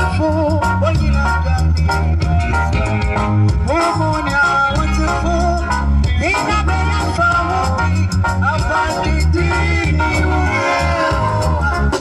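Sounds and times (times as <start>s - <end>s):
live reggae band playing: 0.0s - 12.0s.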